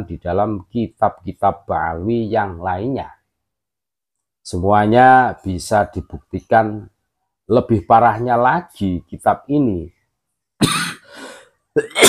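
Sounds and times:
man coughing: 0:10.6 - 0:11.2, 0:11.8 - 0:12.0.

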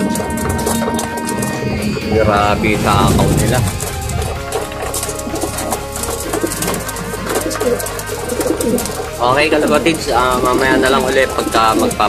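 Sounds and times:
pigeons cooing: 0:06.2 - 0:09.2.

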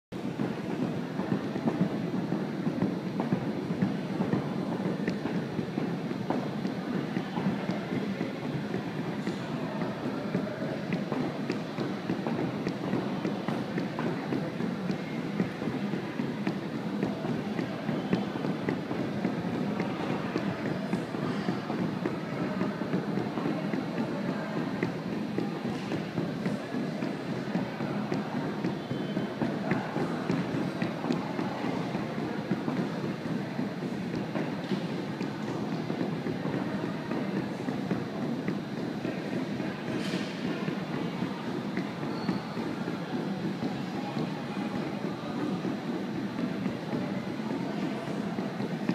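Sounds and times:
battle ropes slapping wooden floor: 0:00.2 - 0:48.9.

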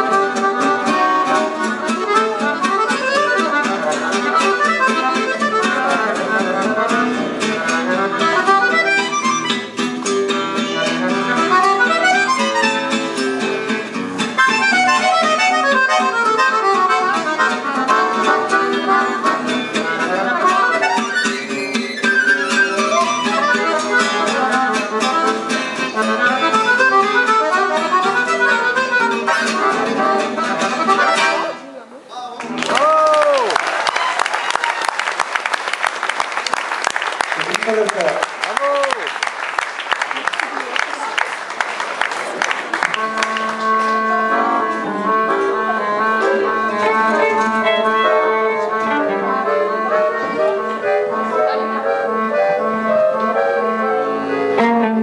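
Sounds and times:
accordion melody: 0:00.0 - 0:31.8, 0:42.7 - 0:55.0
acoustic guitar accompaniment: 0:00.0 - 0:34.7, 0:41.3 - 0:55.0.

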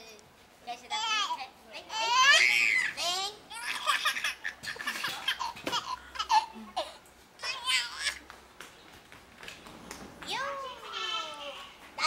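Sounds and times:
baby laughing and babbling: 0:01.9 - 0:08.2.

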